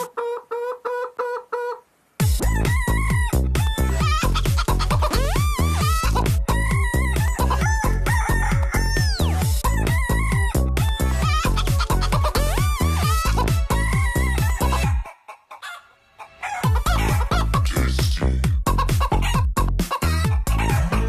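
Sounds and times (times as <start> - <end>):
techno dance track: 2.2 - 15.0, 16.6 - 21.0
sampled rooster crowing: 7.5 - 9.3, 15.6 - 17.2.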